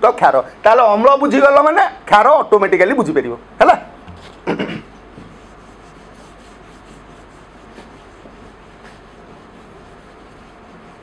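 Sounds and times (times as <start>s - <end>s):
duster rubbing whiteboard: 5.0s - 11.0s.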